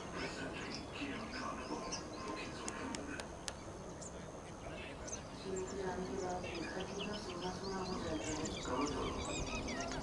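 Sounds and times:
murmur of distant voices: 0.0s - 10.0s
small birds chirping: 0.0s - 10.0s.

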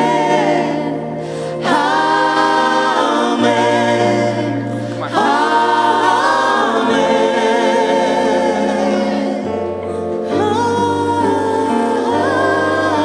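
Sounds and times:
group singing gospel song: 0.0s - 13.0s.

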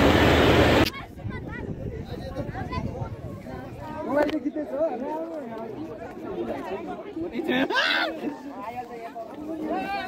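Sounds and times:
people chattering: 0.5s - 10.0s.

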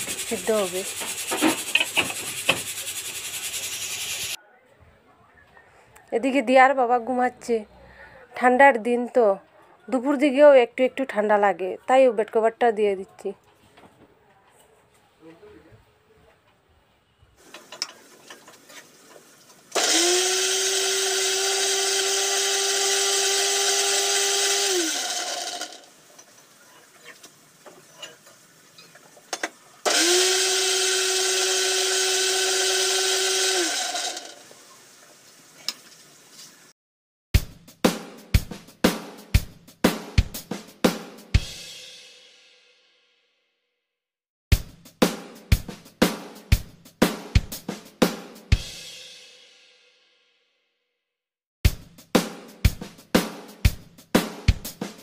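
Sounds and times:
mixer grinder motor whine: 19.8s - 25.9s, 29.9s - 34.5s
drum beat: 37.4s - 42.2s, 44.5s - 49.3s, 51.6s - 55.0s.

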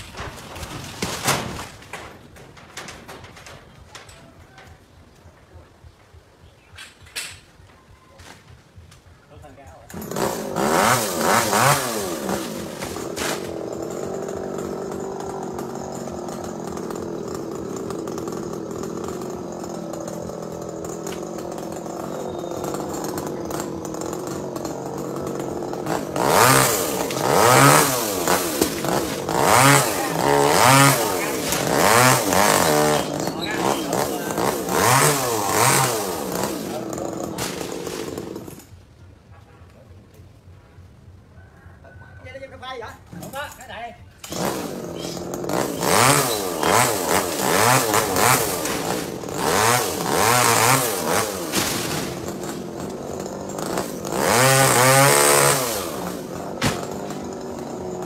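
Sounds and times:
chainsaw revving and idling: 9.7s - 38.8s, 44.1s - 58.0s.

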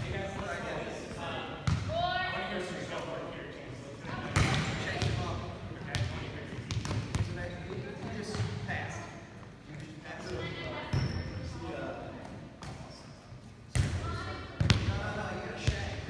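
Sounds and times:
volleyballs hit and bouncing: 4.3s - 5.3s.

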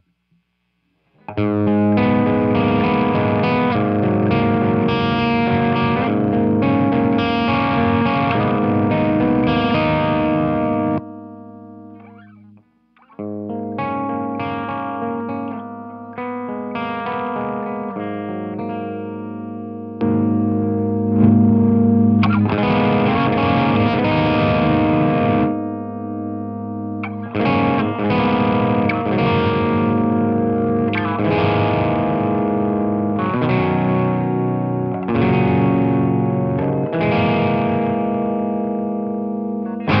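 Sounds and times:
electric guitar chords ringing: 1.2s - 40.0s.

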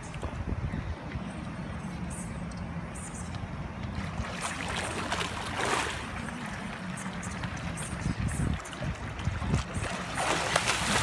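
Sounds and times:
wind rumble on microphone: 0.0s - 2.8s, 3.9s - 11.0s
pool water sloshing and splashing: 3.7s - 11.0s.

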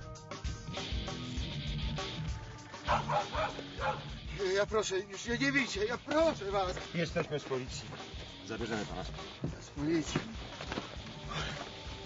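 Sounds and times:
dog barking: 2.8s - 4.2s.

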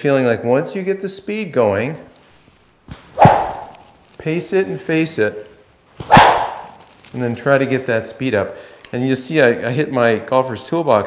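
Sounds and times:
rubber band swishing: 2.9s - 4.2s, 6.0s - 7.3s.

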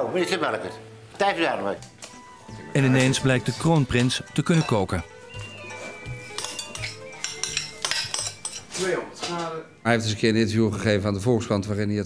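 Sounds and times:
man speaking: 2.7s - 5.1s, 8.8s - 12.0s
glass bowl and utensils clinking: 2.9s - 9.5s.

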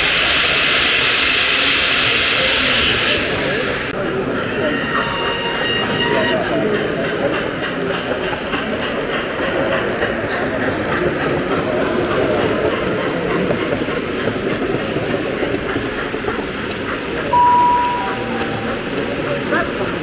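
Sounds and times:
model train rumble and clatter: 0.0s - 20.0s
chatter of many people: 0.3s - 20.0s.

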